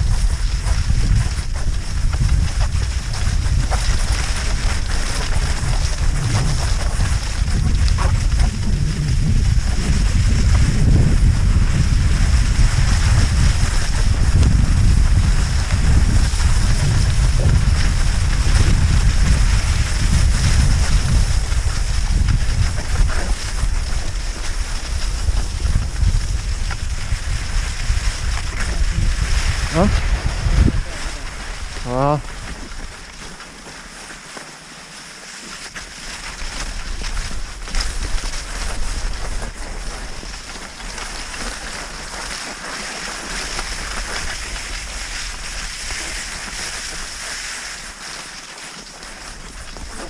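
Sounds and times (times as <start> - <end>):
wind buffeting microphone: 0.0 - 33.1
skis gliding on snow: 0.0 - 50.0.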